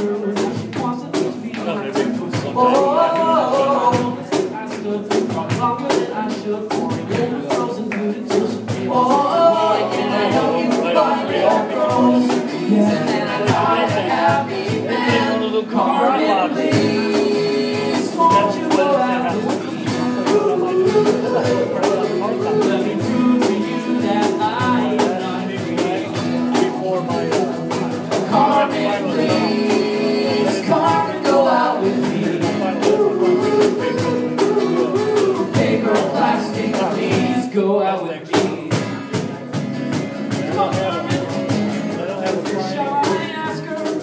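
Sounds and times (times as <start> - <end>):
steady drum beat: 0.0 - 37.6, 38.2 - 44.0
person singing: 0.0 - 39.3
strummed guitar: 0.0 - 44.0.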